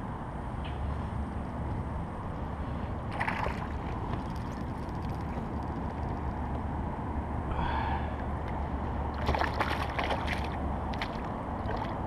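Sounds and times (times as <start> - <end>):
wind rumbling on microphone: 0.0 - 12.0
water lapping against hull: 3.1 - 6.1, 9.2 - 12.0.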